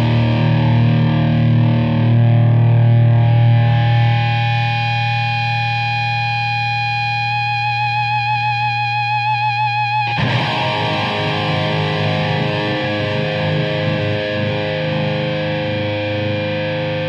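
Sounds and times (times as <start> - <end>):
distorted electric guitar chords: 0.0 - 17.0
guitar note with vibrato: 10.1 - 17.0.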